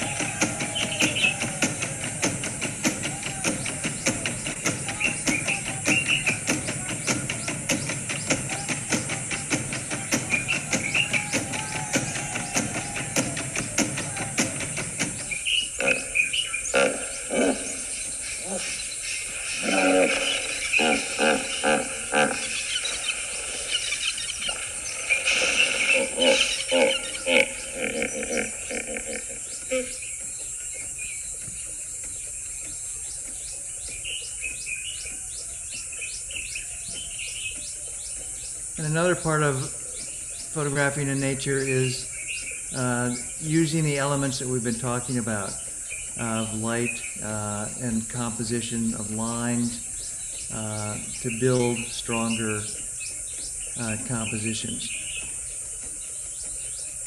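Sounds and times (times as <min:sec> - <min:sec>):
hippopotamuses grunting and honking: 0:00.0 - 0:56.9
birds chirping: 0:00.0 - 0:57.0
crickets chirping: 0:00.0 - 0:57.0.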